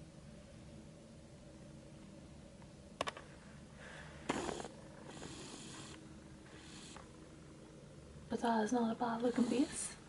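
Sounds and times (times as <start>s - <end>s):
soft breathing: 3.3s - 7.2s.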